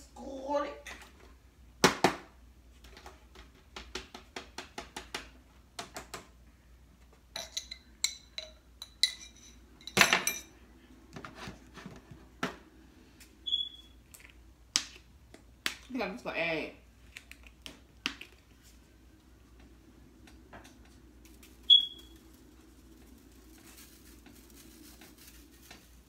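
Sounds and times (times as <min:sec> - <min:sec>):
utensil clinking on glass jar: 0:07.4 - 0:10.5.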